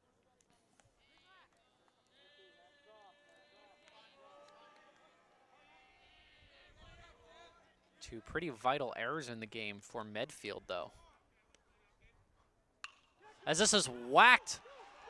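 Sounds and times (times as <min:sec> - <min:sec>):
people calling out and shouting: 0:13.0 - 0:15.0.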